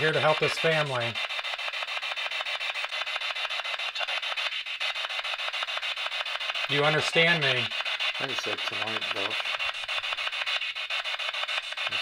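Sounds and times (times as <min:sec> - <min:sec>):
pulsing radio static: 0:00.0 - 0:01.6, 0:03.0 - 0:12.0.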